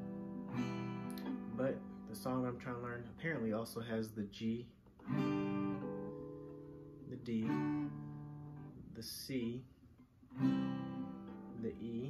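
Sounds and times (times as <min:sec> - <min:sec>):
acoustic guitar chord strummed: 0:00.0 - 0:09.6, 0:10.3 - 0:12.0.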